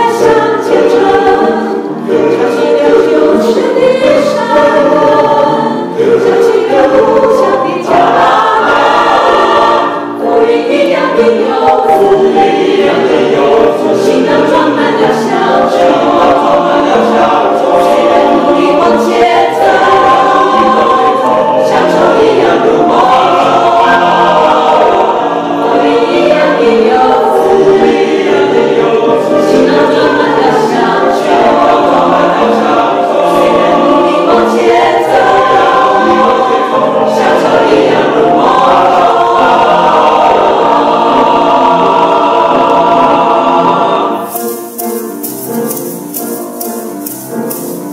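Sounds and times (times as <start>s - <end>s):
mixed choir singing: 0.0s - 47.9s.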